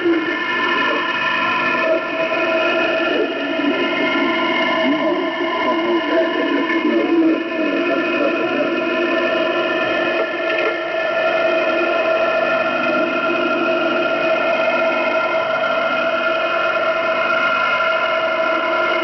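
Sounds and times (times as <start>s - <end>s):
constant whistling tones: 0.0s - 19.0s
radio static hiss: 0.0s - 19.0s.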